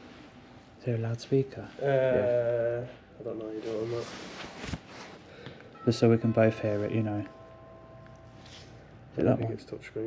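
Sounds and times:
glove and sleeve rustle: 0:03.6 - 0:05.2.

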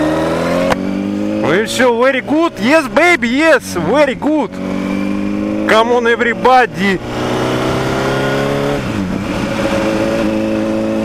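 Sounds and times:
motorcycle engine: 0:00.0 - 0:11.0
wind noise: 0:07.0 - 0:11.0.

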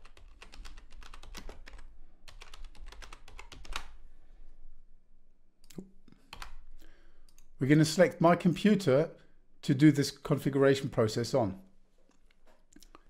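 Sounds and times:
typing on computer keyboard: 0:00.0 - 0:04.0, 0:06.3 - 0:06.6.

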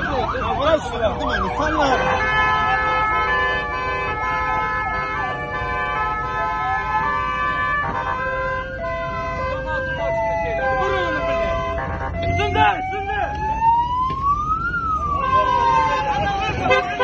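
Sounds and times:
siren wailing: 0:00.0 - 0:17.0.

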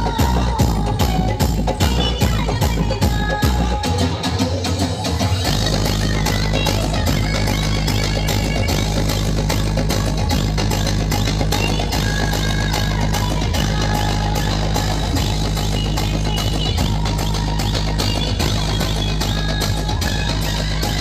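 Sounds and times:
heavy steady bass: 0:00.0 - 0:21.0
loud dance music: 0:00.0 - 0:21.0.

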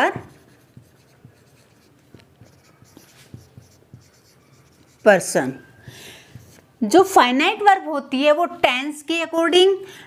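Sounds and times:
marker pen writing on whiteboard: 0:00.0 - 0:05.6, 0:06.2 - 0:06.8.

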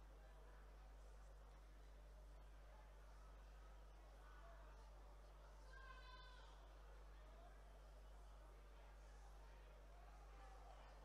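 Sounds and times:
faint indistinct murmurs: 0:00.0 - 0:11.0
faint high-pitched cry: 0:05.6 - 0:06.7.

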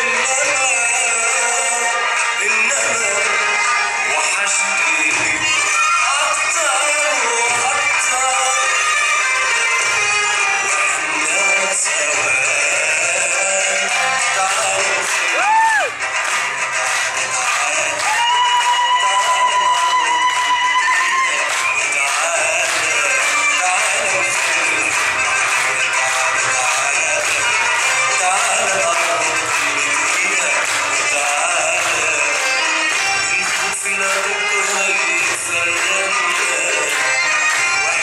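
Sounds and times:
belly dance music: 0:00.0 - 0:38.0.

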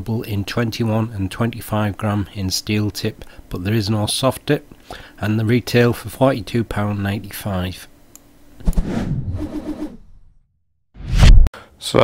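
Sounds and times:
sudden hit sound effect: 0:11.0 - 0:11.5.

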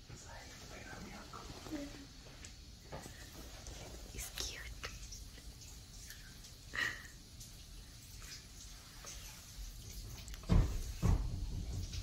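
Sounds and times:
person whispering: 0:00.2 - 0:02.0, 0:04.1 - 0:05.2.

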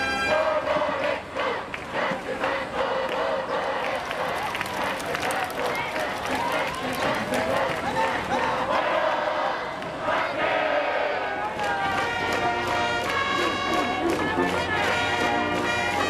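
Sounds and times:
brass band phrase: 0:00.0 - 0:00.8, 0:11.8 - 0:16.0
crowd chanting in unison: 0:00.0 - 0:16.0.

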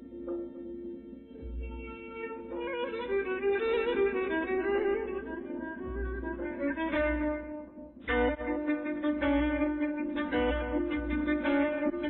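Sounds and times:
string ensemble: 0:00.0 - 0:12.0
violin melody: 0:00.0 - 0:12.0.

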